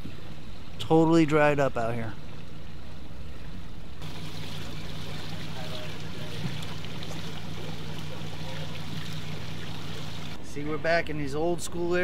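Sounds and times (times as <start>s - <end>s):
boat motor humming: 2.4s - 10.4s
water gushing and splashing: 4.0s - 10.4s.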